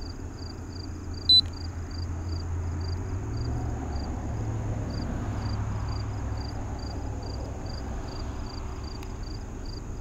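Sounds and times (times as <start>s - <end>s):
insects chirping: 0.0s - 10.0s
short high beep: 1.3s - 1.5s.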